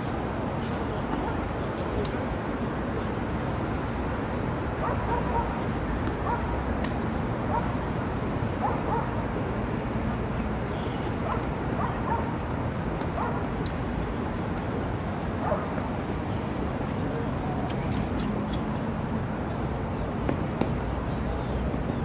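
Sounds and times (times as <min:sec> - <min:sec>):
low rumble of traffic: 0:00.0 - 0:22.0.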